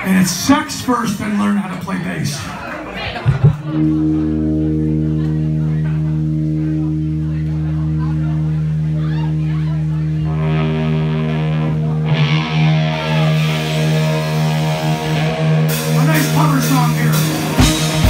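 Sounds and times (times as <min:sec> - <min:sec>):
distorted electric guitar and bass: 0:00.0 - 0:01.9, 0:03.2 - 0:18.0.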